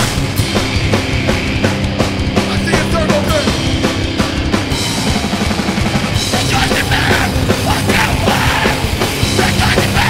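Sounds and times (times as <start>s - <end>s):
distorted guitars: 0.0s - 10.0s
rapid drumming: 0.0s - 10.0s
shouted vocal: 6.4s - 10.0s.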